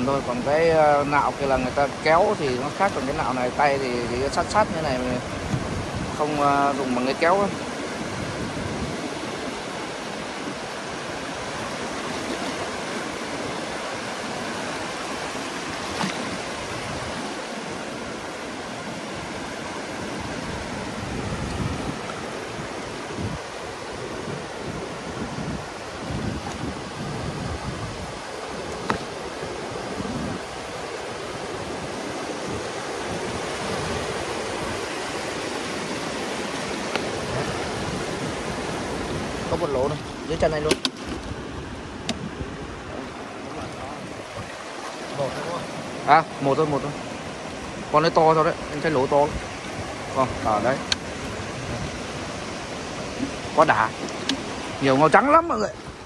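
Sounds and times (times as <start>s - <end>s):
surf washing over beach: 0.0s - 56.0s
wind buffeting microphone: 0.0s - 56.0s.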